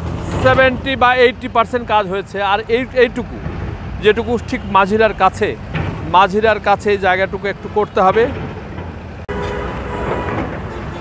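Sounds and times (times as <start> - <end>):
diesel construction machinery rumble: 0.0 - 11.0
road traffic: 0.0 - 11.0.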